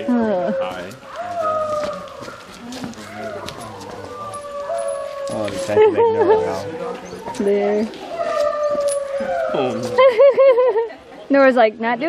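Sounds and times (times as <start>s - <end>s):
dog howling: 0.0s - 10.0s.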